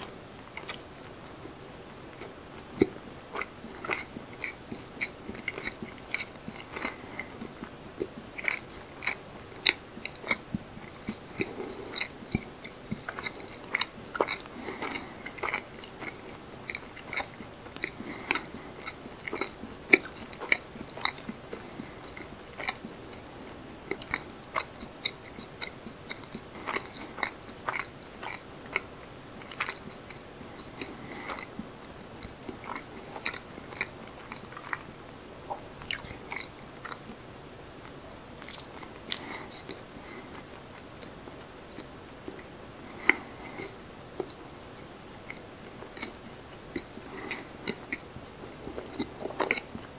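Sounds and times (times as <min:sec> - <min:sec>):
chewing rice cake: 0:00.0 - 0:49.9.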